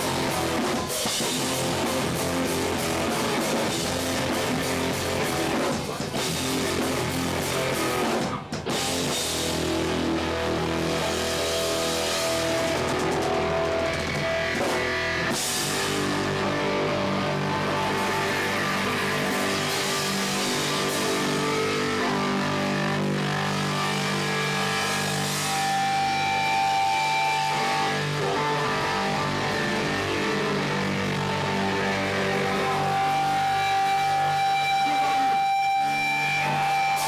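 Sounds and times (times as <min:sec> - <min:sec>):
distorted electric guitar chords: 0:00.0 - 0:37.0
hardcore punk band playing live: 0:00.0 - 0:37.0.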